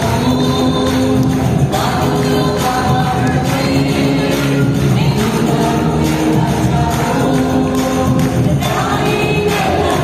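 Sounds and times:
congregation singing: 0:00.0 - 0:10.0.

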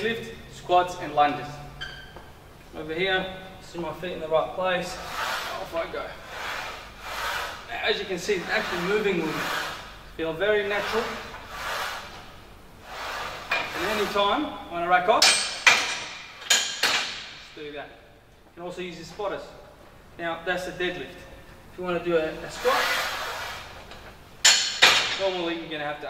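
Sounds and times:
soft rushing noise: 0:02.8 - 0:14.5.

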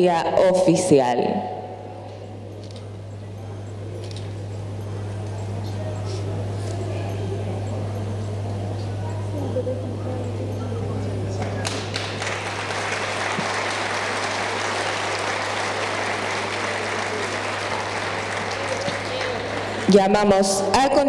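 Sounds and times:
steady low hum: 0:00.0 - 0:21.0
voices talking: 0:02.0 - 0:21.0
audience applauding: 0:11.3 - 0:20.0.

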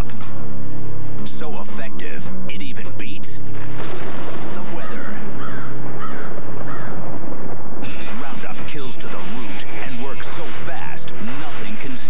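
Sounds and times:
crows cawing: 0:04.8 - 0:07.2.

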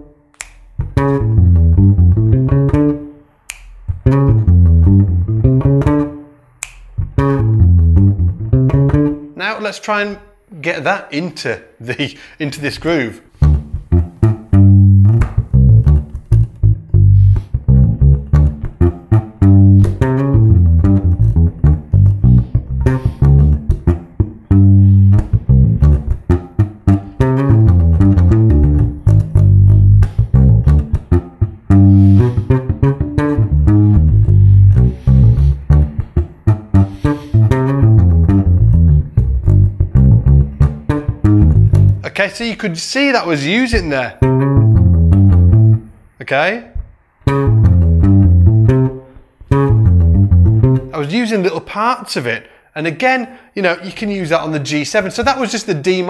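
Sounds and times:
electric bass played fingerstyle: 0:00.0 - 0:09.4, 0:13.3 - 0:42.1, 0:43.7 - 0:51.1.

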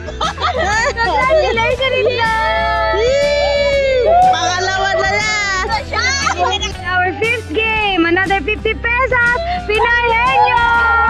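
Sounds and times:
children squealing and laughing: 0:00.0 - 0:06.9, 0:09.2 - 0:11.0.

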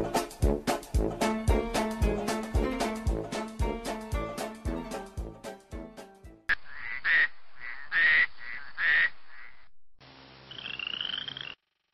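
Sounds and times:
swing-style brass music: 0:00.0 - 0:05.6.

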